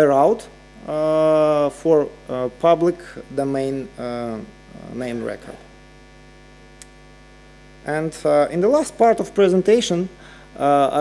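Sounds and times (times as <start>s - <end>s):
electrical mains hum: 0.0s - 11.0s
faint click: 6.8s - 7.0s.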